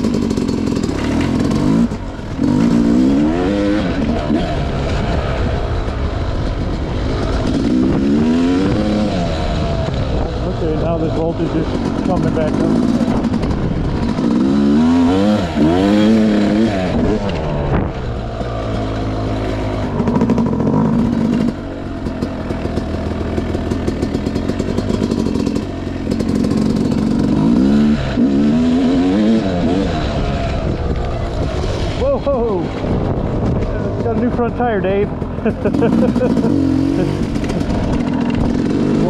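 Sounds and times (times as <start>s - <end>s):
dirt bike engine revving: 0.0s - 39.0s.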